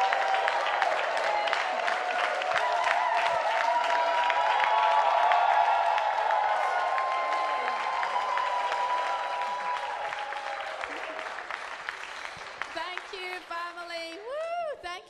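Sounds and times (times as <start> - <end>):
audience clapping: 0.0 - 14.6.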